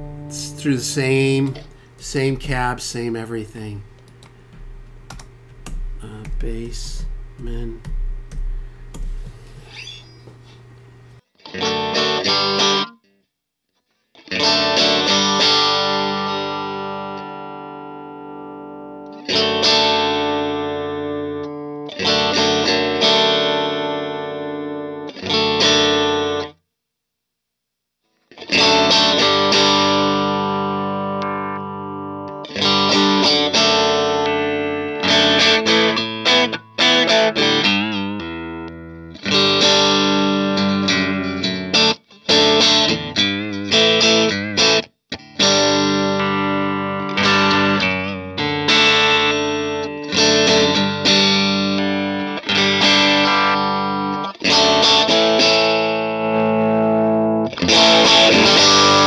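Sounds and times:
electric guitar chords ringing: 0.0s - 13.0s, 14.2s - 26.5s, 28.4s - 59.0s.

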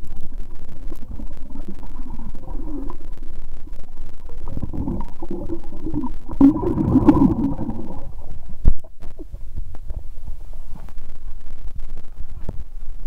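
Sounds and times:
underwater rumbling and gurgling: 0.0s - 13.0s.

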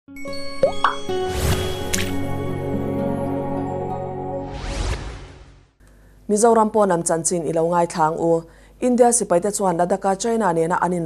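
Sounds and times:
soft intro music: 0.1s - 5.7s.

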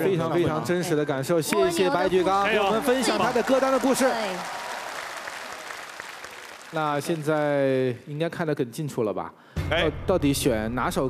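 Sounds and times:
studio audience applauding: 1.6s - 8.2s.

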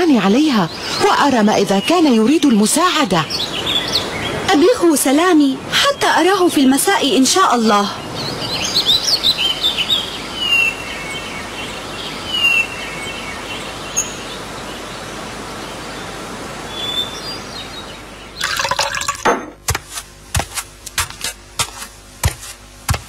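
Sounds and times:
birds chirping: 0.0s - 19.2s
liquid being poured: 18.4s - 19.4s
steady hiss: 19.6s - 23.0s.

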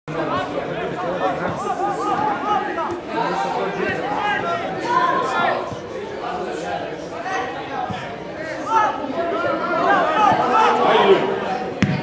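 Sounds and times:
people chattering: 0.1s - 12.0s.

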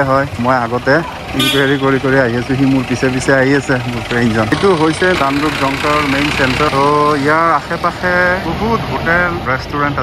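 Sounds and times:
man talking: 0.0s - 10.0s
vehicle engine hum: 0.0s - 10.0s.

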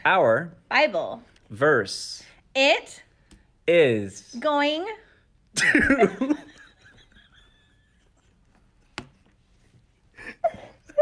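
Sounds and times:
stifled laughter: 10.2s - 11.0s.

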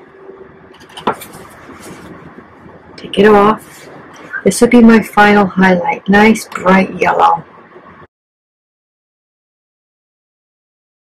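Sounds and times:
paintbrush wiped on paper towel: 1.1s - 2.2s.

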